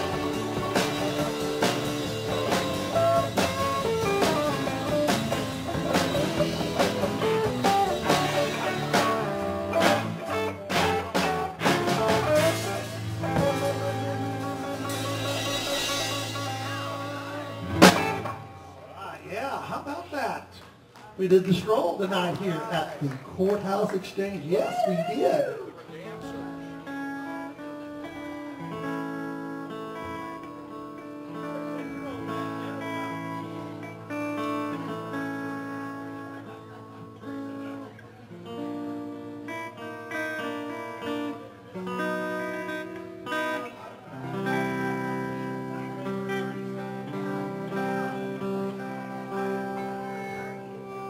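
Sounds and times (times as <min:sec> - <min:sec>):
electric guitar chords: 0:00.0 - 0:19.1, 0:25.8 - 0:51.0
live band playing: 0:00.0 - 0:19.1, 0:20.1 - 0:51.0.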